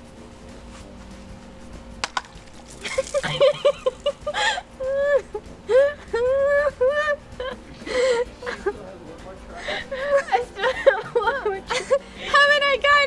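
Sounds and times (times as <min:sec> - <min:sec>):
young women giggling and squealing: 0:02.8 - 0:08.8, 0:09.6 - 0:12.5.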